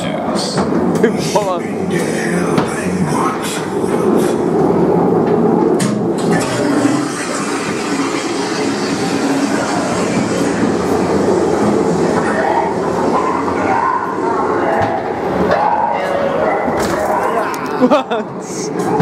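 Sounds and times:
ride car rattling along track: 0.0s - 19.0s.

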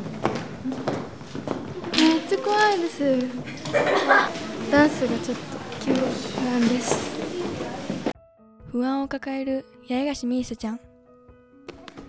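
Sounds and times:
young women speaking: 1.9s - 8.1s, 8.7s - 10.8s.

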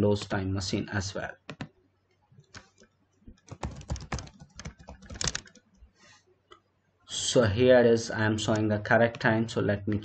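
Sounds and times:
computer keyboard typing: 1.5s - 1.7s, 2.4s - 5.7s.

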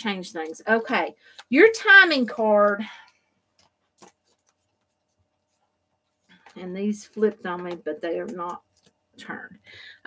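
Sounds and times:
cards being handled: 1.3s - 9.0s.

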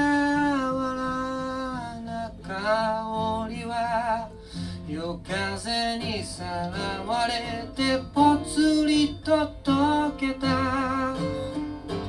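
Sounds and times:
live acoustic performance: 0.0s - 12.0s.

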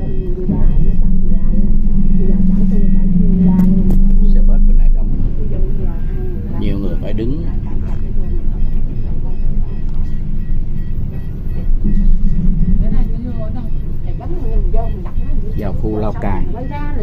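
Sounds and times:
bus engine and road rumble: 0.0s - 17.0s
passengers' voices: 0.0s - 17.0s.

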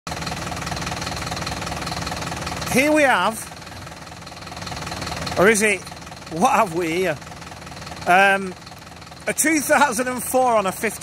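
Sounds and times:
diesel engine idling: 0.1s - 11.0s.

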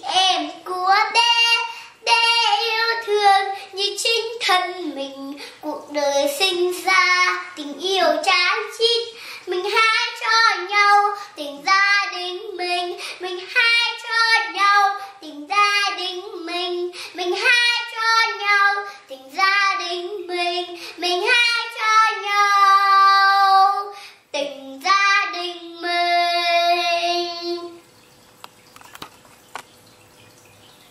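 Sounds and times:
girl singing unaccompanied: 0.0s - 27.9s.

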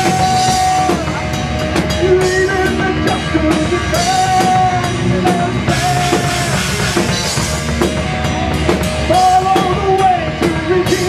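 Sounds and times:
distorted electric guitars: 0.0s - 11.0s
drum kit with cymbal strikes: 0.0s - 11.0s.

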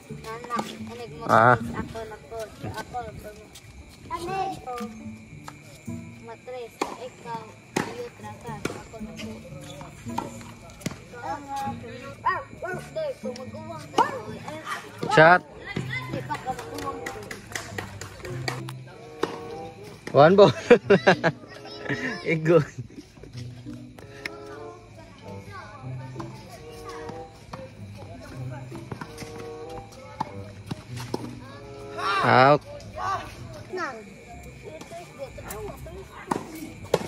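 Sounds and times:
racket hitting tennis ball: 6.8s - 11.0s, 19.2s - 20.1s, 28.7s - 31.4s, 36.2s - 37.0s.

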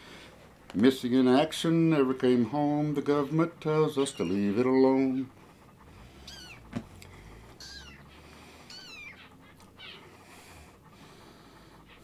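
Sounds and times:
kitten mewing: 4.0s - 4.4s, 6.2s - 6.8s, 7.6s - 10.1s.

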